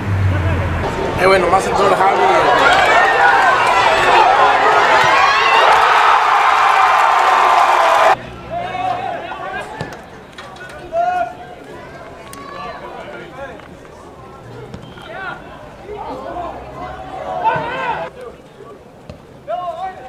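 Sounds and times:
players and spectators shouting: 0:00.5 - 0:18.8.

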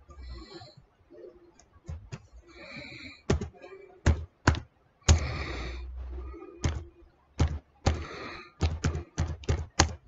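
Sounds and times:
steady noise with low hum: 0:00.0 - 0:10.0.

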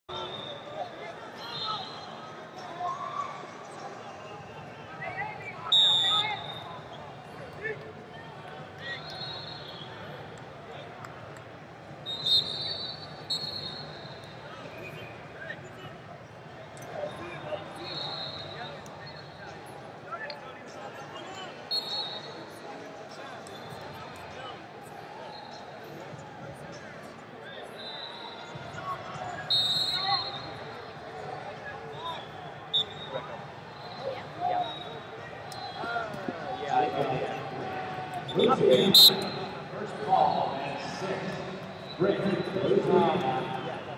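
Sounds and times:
murmur of voices: 0:00.1 - 0:43.9
referee whistle blasts: 0:05.7 - 0:06.8, 0:09.0 - 0:09.9, 0:12.0 - 0:14.2, 0:17.8 - 0:19.3, 0:21.7 - 0:22.3, 0:29.5 - 0:30.6, 0:32.0 - 0:33.2, 0:38.3 - 0:39.6.

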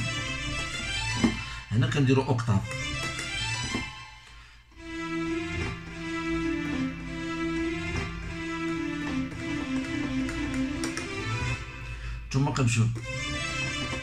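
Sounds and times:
keyboard melody of held notes: 0:00.0 - 0:14.0.

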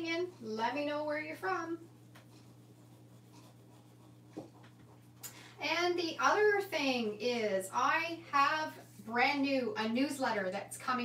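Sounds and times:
fingers rubbing paper: 0:00.0 - 0:05.2
low steady hum: 0:00.0 - 0:11.0.

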